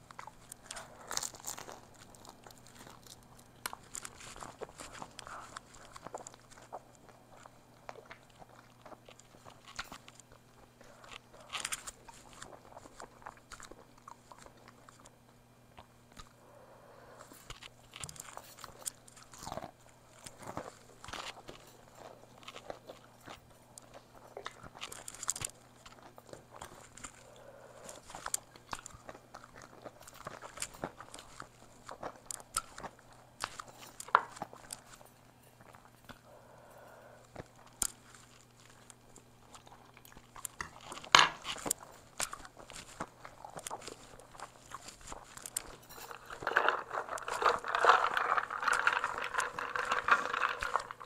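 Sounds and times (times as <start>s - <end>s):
crunchy chewing: 0.0s - 51.0s.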